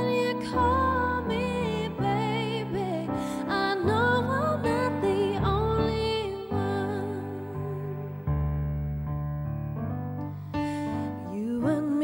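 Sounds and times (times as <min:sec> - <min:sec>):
keyboard piano chords: 0:00.0 - 0:12.0.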